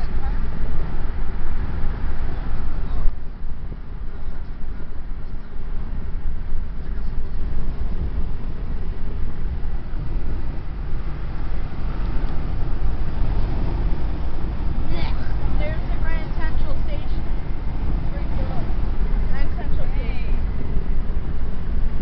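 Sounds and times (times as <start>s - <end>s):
car road and engine rumble: 0.0s - 22.0s.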